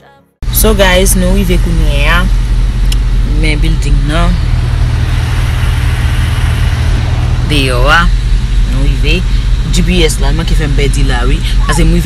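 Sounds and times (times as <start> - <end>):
car engine idling: 0.4 - 12.0.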